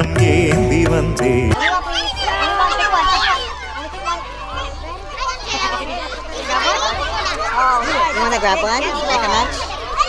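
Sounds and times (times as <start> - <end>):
adult chatter: 0.0 - 10.0
children's voices: 1.5 - 10.0.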